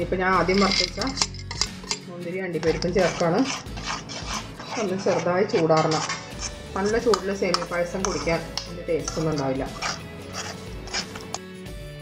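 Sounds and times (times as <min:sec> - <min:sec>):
background music: 0:00.0 - 0:12.0
metal spoon scraping metal pan: 0:00.3 - 0:11.5
person talking: 0:02.1 - 0:03.6, 0:04.6 - 0:10.0.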